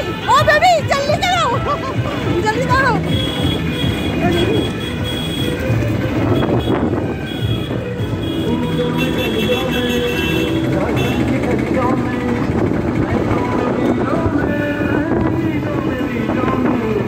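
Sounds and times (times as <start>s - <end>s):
voices: 0.0s - 6.4s, 8.4s - 17.0s
music with held notes: 0.0s - 17.0s
traffic noise: 0.0s - 17.0s.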